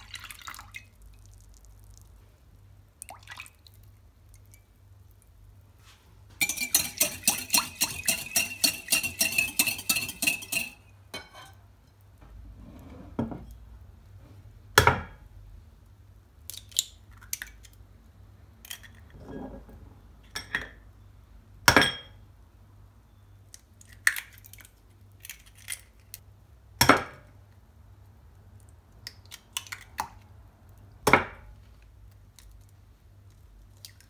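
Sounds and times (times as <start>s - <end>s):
whisk clinking on glass bowl: 6.4s - 11.5s.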